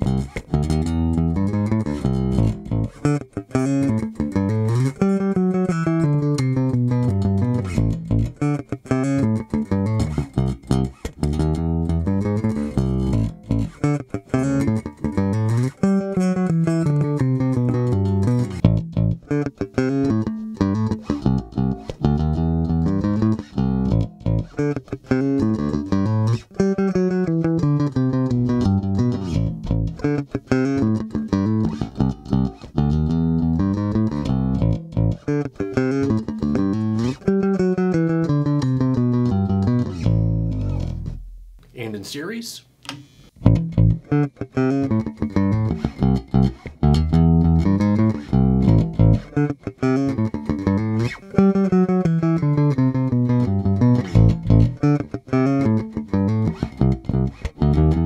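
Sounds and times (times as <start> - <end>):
electric bass riff: 0.0 - 42.0, 43.4 - 58.0.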